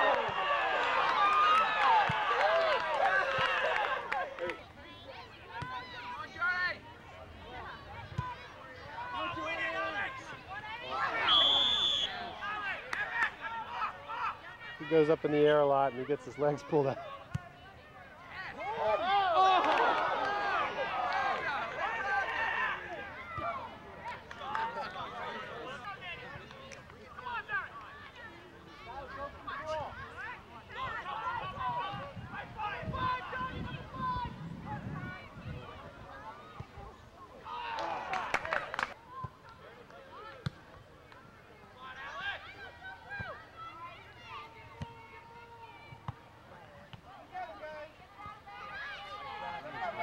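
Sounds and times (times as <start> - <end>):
crowd shouting and cheering: 0.0 - 40.7, 41.8 - 50.0.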